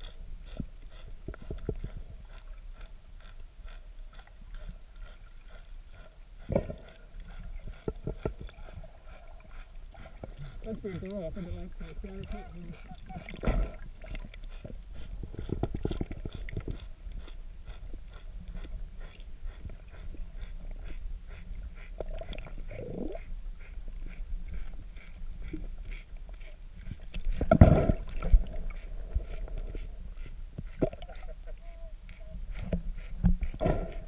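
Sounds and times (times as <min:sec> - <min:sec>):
low underwater rumble: 0:00.0 - 0:34.0.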